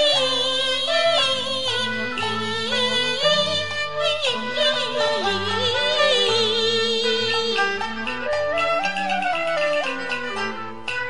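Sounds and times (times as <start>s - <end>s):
instrumental accompaniment: 0.0s - 11.0s.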